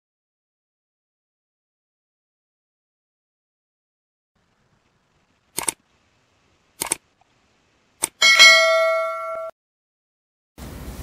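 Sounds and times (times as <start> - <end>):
notification bell ding: 8.2 - 9.5.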